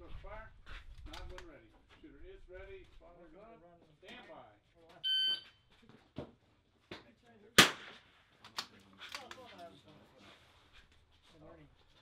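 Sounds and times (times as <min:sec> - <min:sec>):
shot timer beep: 0:05.1 - 0:05.4
sharp rifle shot: 0:07.6 - 0:08.2.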